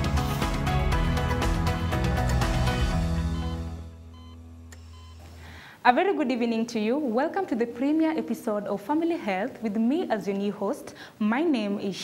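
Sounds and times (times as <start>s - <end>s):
low synth tone: 0.0s - 5.2s
faint electronic beeps: 3.2s - 5.2s
woman speaking: 5.9s - 12.0s.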